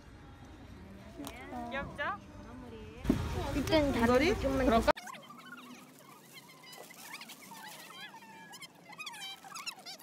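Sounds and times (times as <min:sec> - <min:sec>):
small birds chirping and trilling: 0:05.0 - 0:10.0.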